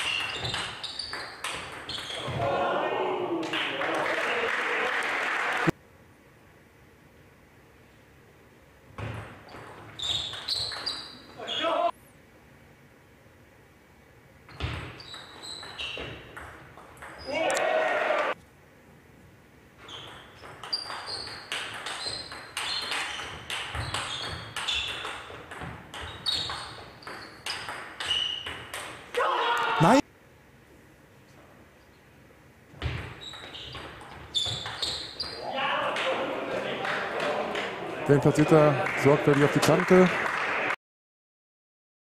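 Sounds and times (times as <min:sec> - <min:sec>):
ping pong ball hitting bats and table: 0:00.0 - 0:02.4, 0:09.1 - 0:10.9, 0:14.6 - 0:17.2, 0:20.0 - 0:29.0
loud shouts: 0:02.2 - 0:05.7, 0:11.4 - 0:12.0, 0:17.3 - 0:18.4, 0:29.2 - 0:30.0, 0:35.4 - 0:38.1.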